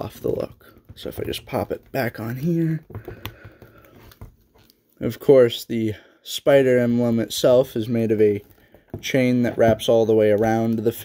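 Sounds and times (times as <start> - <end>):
plastic figure rubbing: 0.0 - 4.8, 7.1 - 11.0.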